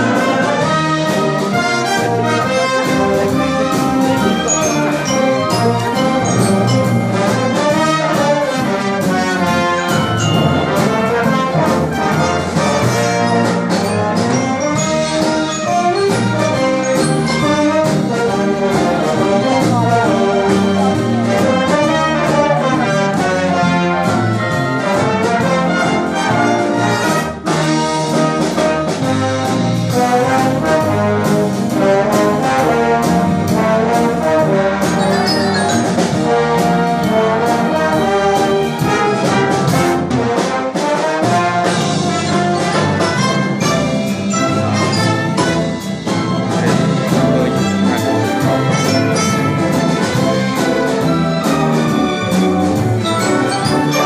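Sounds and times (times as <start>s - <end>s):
symphony orchestra playing: 0.0s - 54.0s.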